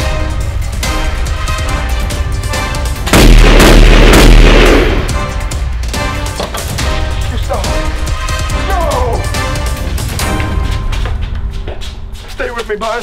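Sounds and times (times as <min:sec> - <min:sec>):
background score music: 0:00.0 - 0:13.0
loud gunshot: 0:03.1 - 0:05.3.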